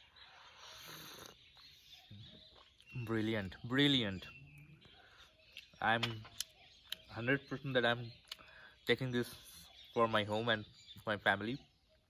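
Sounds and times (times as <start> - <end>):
person slurping tea: 0.5 - 1.4.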